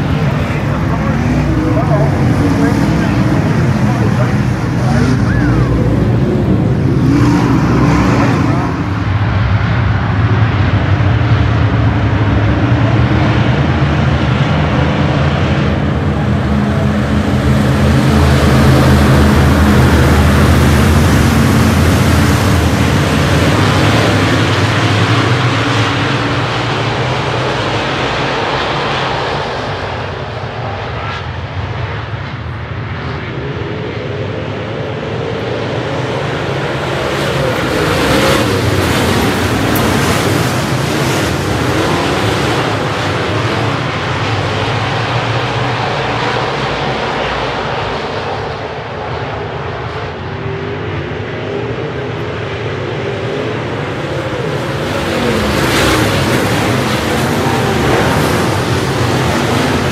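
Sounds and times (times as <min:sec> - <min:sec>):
race car engines at speed: 0:00.0 - 0:59.9.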